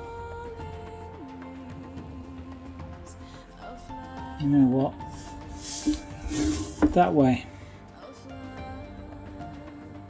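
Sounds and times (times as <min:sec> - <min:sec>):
background music held tones: 0:00.0 - 0:10.0
wooden board rustling on desk: 0:05.5 - 0:07.1.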